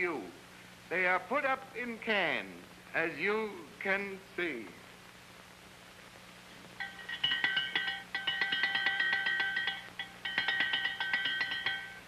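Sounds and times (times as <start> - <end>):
faint low hum: 0.0 - 12.0
electric bell ringing: 6.8 - 12.0.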